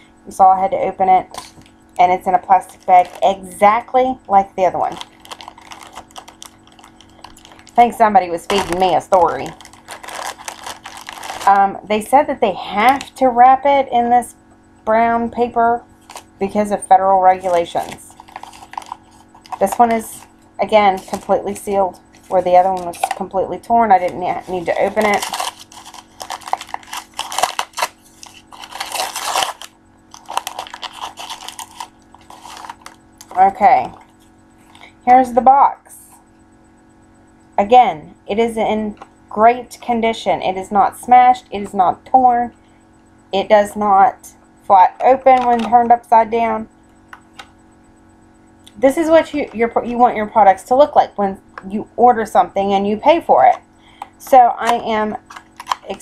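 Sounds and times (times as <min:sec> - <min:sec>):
faint steady hum: 0:00.0 - 0:56.0
plastic bag crinkling: 0:02.6 - 0:03.6, 0:04.8 - 0:11.6, 0:16.0 - 0:16.4, 0:17.4 - 0:20.3, 0:20.9 - 0:23.3, 0:24.0 - 0:34.3, 0:55.2 - 0:56.0.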